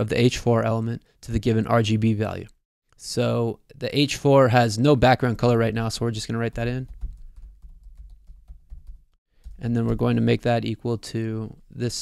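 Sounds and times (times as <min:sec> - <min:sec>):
typing on computer keyboard: 0:06.6 - 0:09.6.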